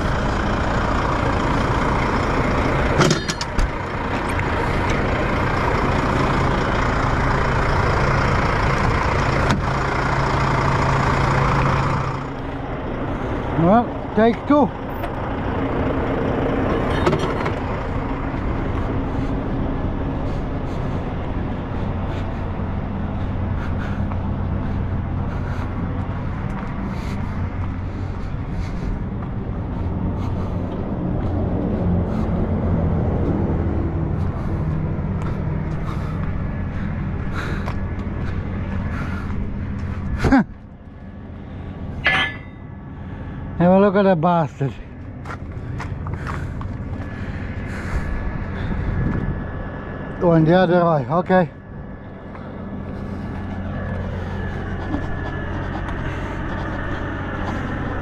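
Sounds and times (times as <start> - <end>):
outdoor background: 0.0 - 58.0
truck diesel engine idling: 0.0 - 58.0.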